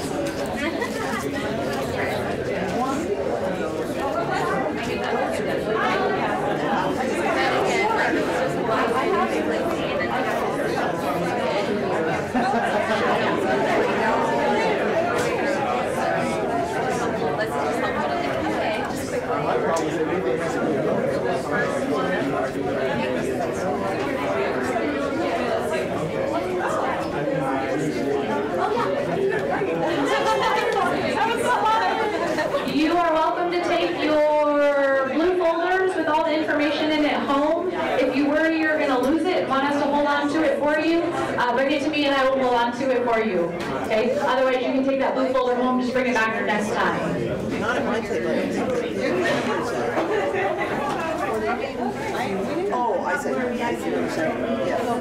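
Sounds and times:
many people talking: 0:00.0 - 0:55.0.

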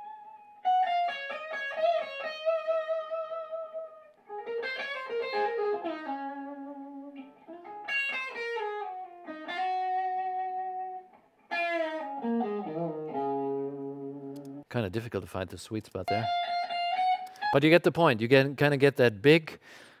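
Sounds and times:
electric guitar solo: 0:00.0 - 0:14.7, 0:16.1 - 0:17.6.

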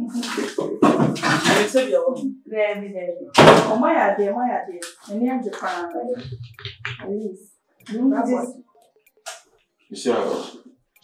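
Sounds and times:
person speaking: 0:00.0 - 0:08.6, 0:10.0 - 0:10.7.

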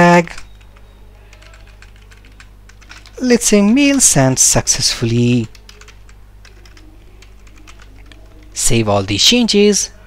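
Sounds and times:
typing on computer keyboard: 0:00.3 - 0:03.2, 0:05.4 - 0:08.6.

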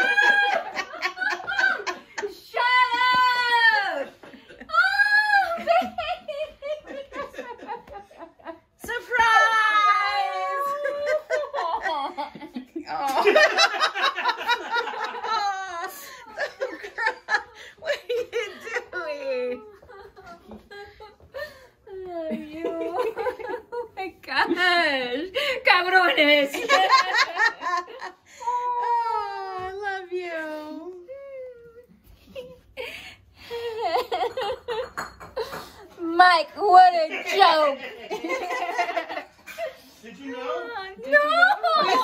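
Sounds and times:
woman squealing with joy: 0:00.0 - 0:04.0.

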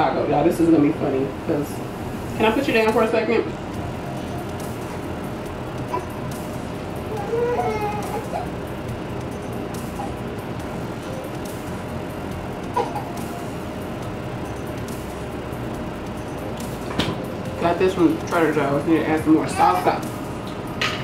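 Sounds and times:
steady background hum: 0:00.0 - 0:21.0
baby cooing: 0:05.8 - 0:06.4, 0:07.0 - 0:08.7, 0:09.9 - 0:10.2, 0:12.7 - 0:13.3.

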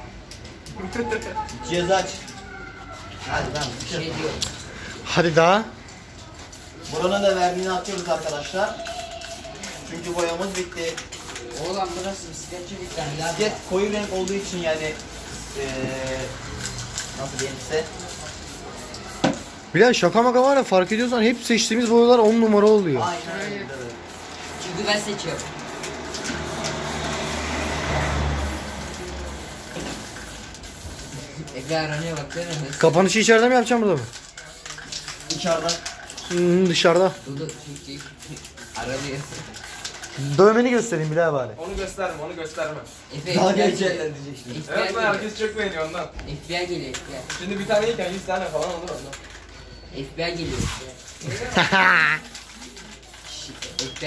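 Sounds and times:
vehicle engine rumble passing: 0:25.0 - 0:29.8
person warbling cry: 0:51.6 - 0:52.3.

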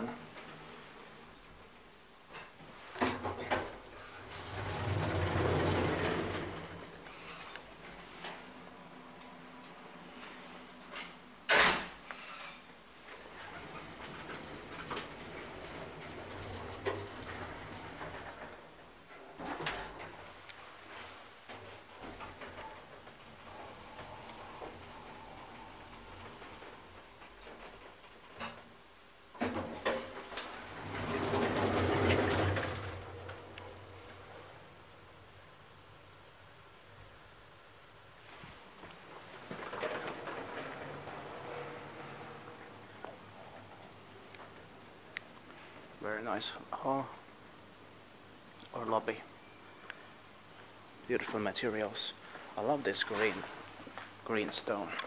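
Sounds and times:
elevator hum and ride noise: 0:02.8 - 0:10.8, 0:13.0 - 0:28.9, 0:29.5 - 0:37.6, 0:38.2 - 0:45.0.

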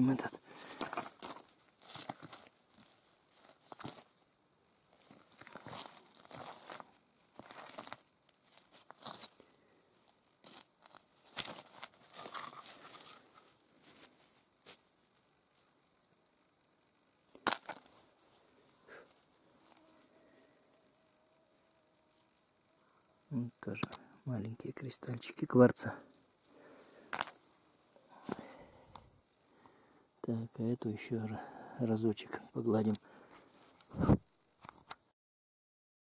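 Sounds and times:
rock scraping over dry leaves: 0:00.4 - 0:04.2, 0:04.9 - 0:15.8, 0:17.4 - 0:20.6.

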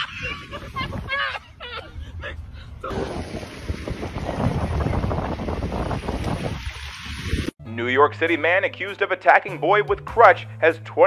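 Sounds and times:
wind buffeting microphone: 0:00.0 - 0:07.5.

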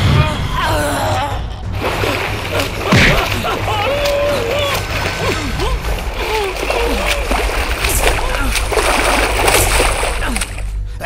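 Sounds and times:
water splashing: 0:01.8 - 0:10.9.

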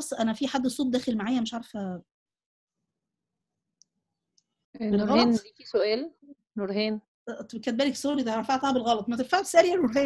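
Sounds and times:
person speaking: 0:04.8 - 0:06.0.

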